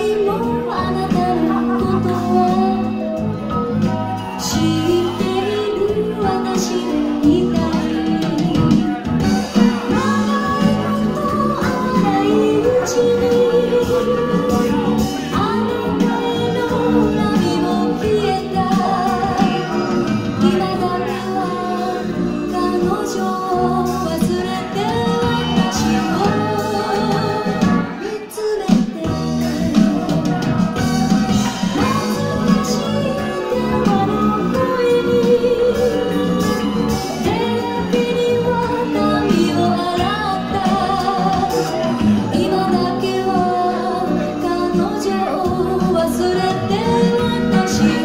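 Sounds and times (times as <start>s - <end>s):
club music with singing: 0.0s - 48.0s
song with vocals over bass line: 0.0s - 48.0s.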